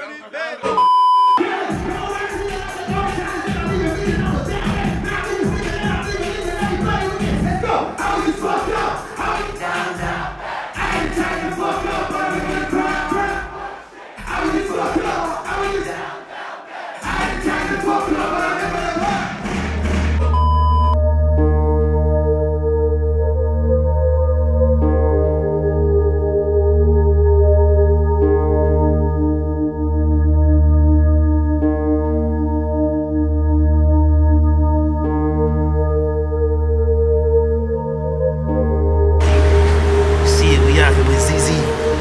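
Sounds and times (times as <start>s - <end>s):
man's voice: 0.0s - 0.8s, 1.4s - 9.0s, 40.2s - 42.0s
electronic beep: 0.7s - 1.4s, 20.3s - 21.0s
hip-hop music with heavy bass: 1.4s - 13.5s, 14.2s - 16.0s, 17.0s - 19.9s, 39.2s - 42.0s
crowd shouting and singing along: 1.4s - 19.4s, 39.3s - 42.0s
music with a beat: 1.7s - 10.2s.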